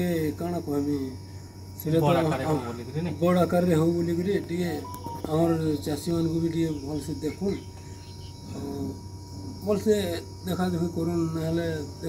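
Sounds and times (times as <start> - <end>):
man speaking: 1.8 - 7.6
high-pitched chirring: 4.7 - 6.1.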